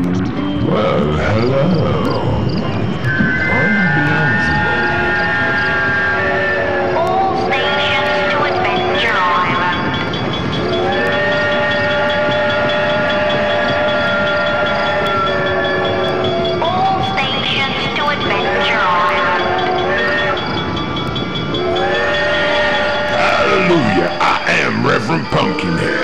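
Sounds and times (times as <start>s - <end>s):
train whistle blasts: 3.1s - 8.8s, 10.6s - 16.6s.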